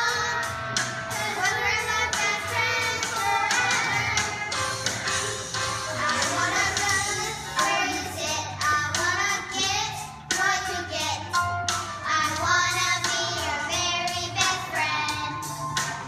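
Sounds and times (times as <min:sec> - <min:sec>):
young children singing: 0:00.0 - 0:16.0.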